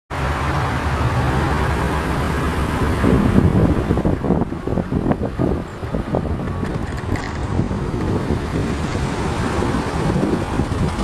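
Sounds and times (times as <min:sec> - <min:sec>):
vehicle engine and road noise: 0:00.1 - 0:11.0
wind rumbling on microphone: 0:00.2 - 0:11.0.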